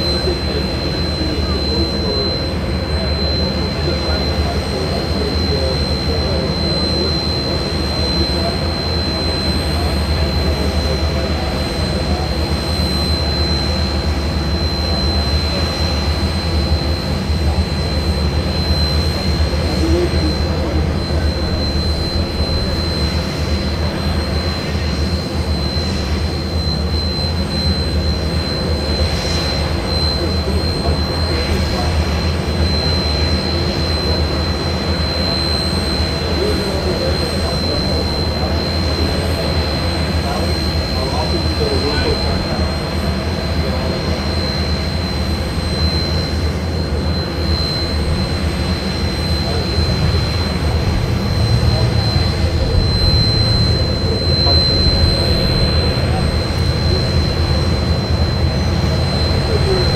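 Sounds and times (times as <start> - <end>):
engine rumbling with high whine: 0.0 - 59.9.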